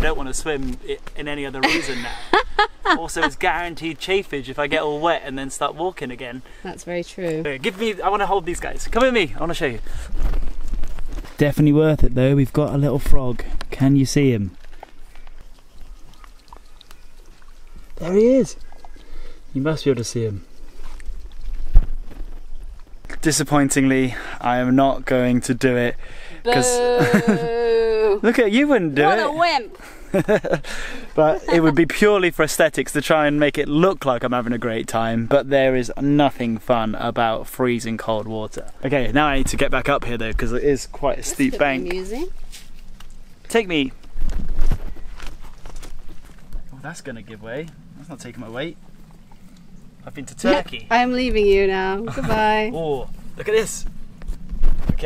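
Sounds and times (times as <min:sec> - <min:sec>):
footsteps on loose stones: 0:10.0 - 0:11.6, 0:20.6 - 0:23.1, 0:43.9 - 0:46.7
river water trickling and lapping: 0:14.8 - 0:21.8, 0:48.8 - 0:49.8.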